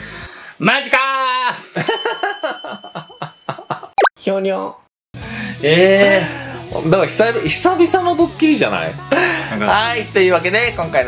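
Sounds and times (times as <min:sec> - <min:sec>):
man laughing: 0:01.8 - 0:03.9
high ringing tone: 0:01.9 - 0:04.0.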